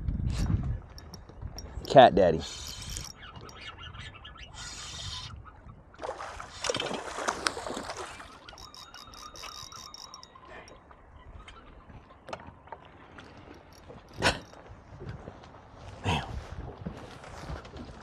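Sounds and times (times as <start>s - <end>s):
fishing reel cranking: 0.3s - 5.4s, 7.4s - 10.8s, 13.6s - 14.6s
water splashing: 6.0s - 10.8s.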